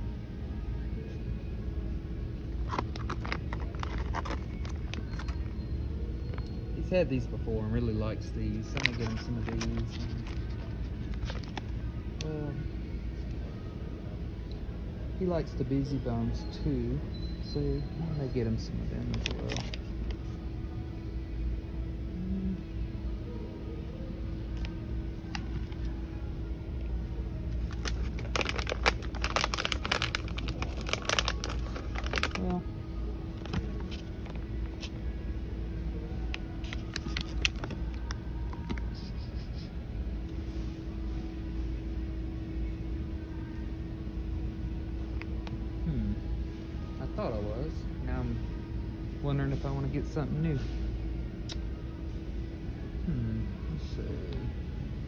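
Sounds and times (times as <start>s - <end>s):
steady hum: 0.0s - 16.0s, 18.3s - 55.0s
plastic bags crackling and rustling: 2.6s - 5.6s, 27.5s - 32.6s, 36.6s - 38.8s.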